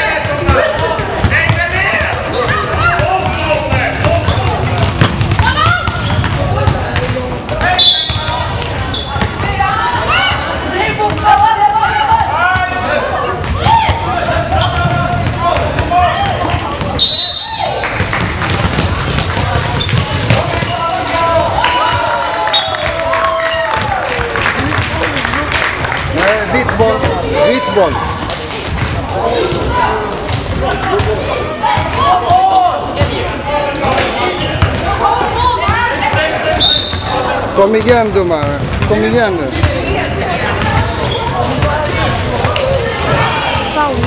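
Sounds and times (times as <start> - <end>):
people calling and chattering: 0.0 - 44.0
basketball bouncing on floor: 0.2 - 9.6, 18.0 - 20.8, 34.6 - 34.8, 37.8 - 40.0, 40.6 - 41.8
referee whistle blasts: 7.8 - 8.3, 17.0 - 17.7, 36.6 - 37.1.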